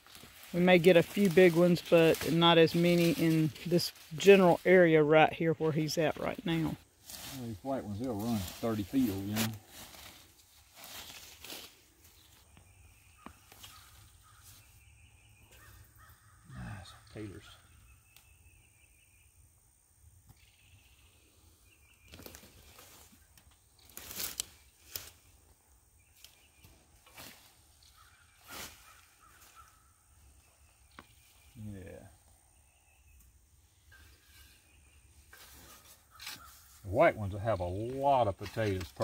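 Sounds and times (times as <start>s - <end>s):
rustling and crunching of soil and vines: 0.0s - 14.8s, 21.8s - 31.9s, 33.9s - 39.0s.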